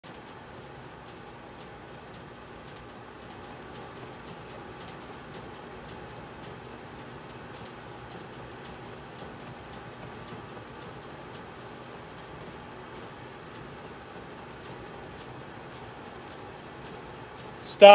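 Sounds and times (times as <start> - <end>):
faint irregular clicks: 0.0 - 17.7.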